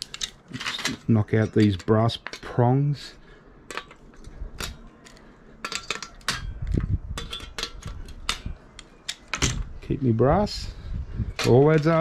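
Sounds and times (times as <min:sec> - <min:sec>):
metal tools clicking on metal: 0:00.0 - 0:02.6, 0:03.7 - 0:09.5.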